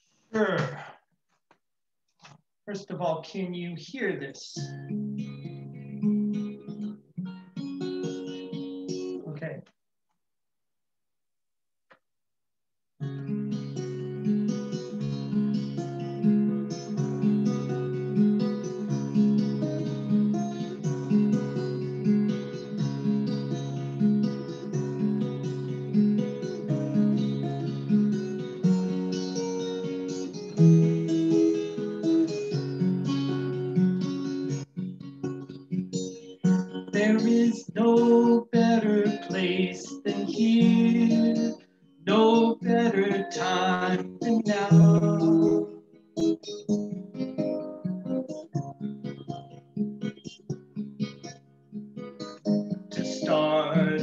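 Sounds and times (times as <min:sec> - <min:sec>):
acoustic guitar picking: 0:04.6 - 0:09.2, 0:13.0 - 0:54.0.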